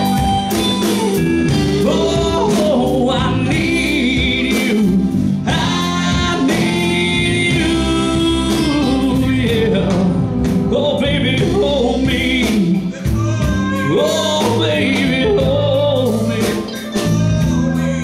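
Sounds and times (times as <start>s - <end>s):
wavering bending lead melody: 0.0s - 4.4s
live band playing: 0.0s - 18.0s.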